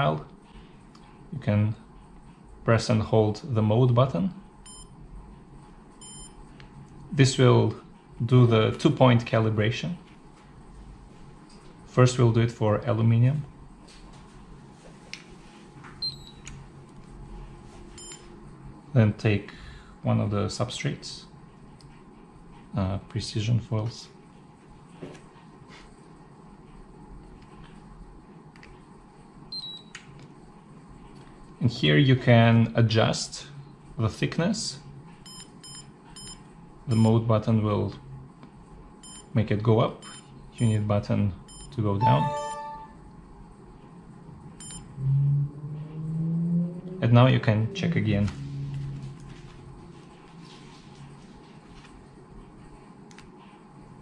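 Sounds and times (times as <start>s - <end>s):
short high electronic beep: 41.5s - 43.0s, 44.6s - 44.8s.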